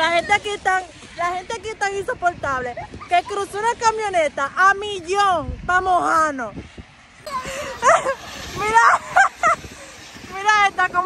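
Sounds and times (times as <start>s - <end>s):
faint outdoor rush: 0.0s - 11.0s.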